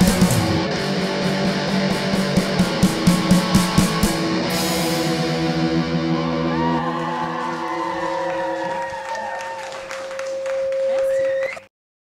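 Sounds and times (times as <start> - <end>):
high guitar note: 0.0 - 8.6
rock band final chord: 0.0 - 8.6
audience clapping and cheering: 6.3 - 11.7.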